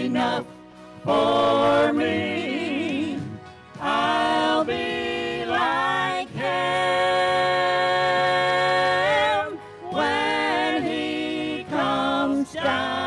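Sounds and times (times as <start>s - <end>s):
group singing gospel in harmony: 0.0s - 13.0s.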